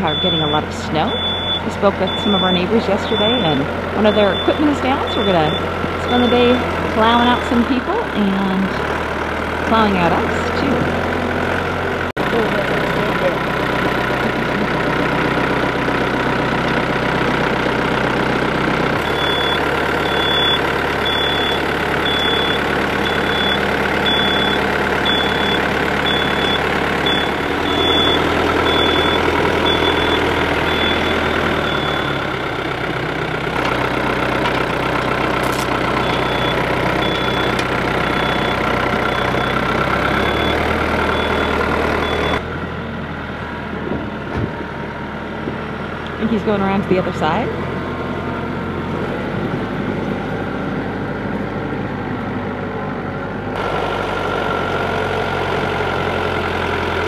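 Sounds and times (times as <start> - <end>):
reversing alarm beeping: 0.0 - 8.8, 19.0 - 32.5, 35.4 - 42.4
tractor diesel engine running: 0.0 - 57.0.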